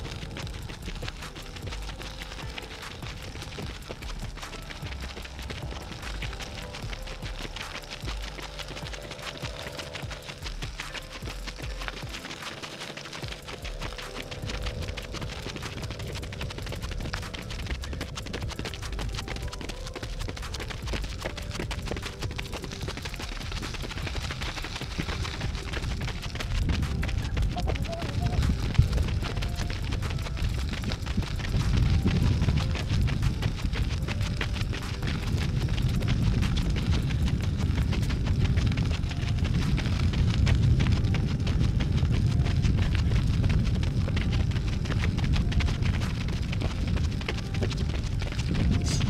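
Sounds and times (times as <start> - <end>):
background music with sustained tones: 0.0 - 49.0
running footsteps on pavement: 0.0 - 49.0.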